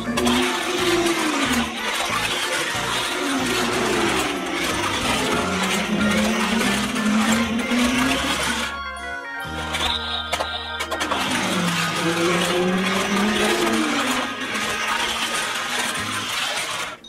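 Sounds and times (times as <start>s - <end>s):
toy car rattling on plastic track: 0.0s - 8.8s, 9.4s - 17.0s.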